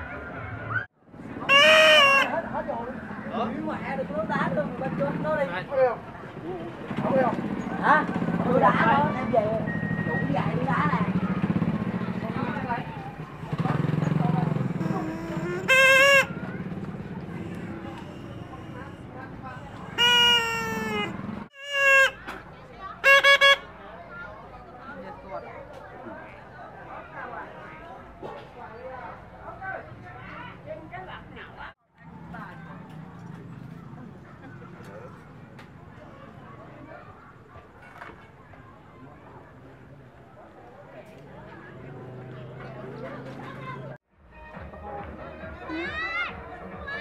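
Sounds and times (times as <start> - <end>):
voices: 0.0 - 44.0
vehicle horn honking: 1.4 - 2.4, 14.4 - 22.4, 23.0 - 23.7.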